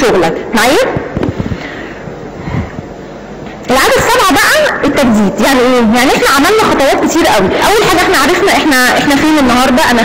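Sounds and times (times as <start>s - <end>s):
microphone handling thumps: 0.9s - 1.6s.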